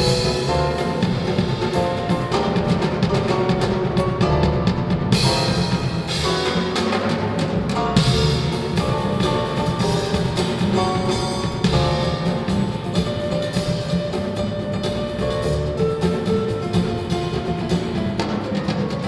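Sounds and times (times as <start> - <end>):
drum kit with cymbals: 0.0 - 19.0
grand piano: 0.0 - 19.0
plucked upright double bass: 0.0 - 19.0.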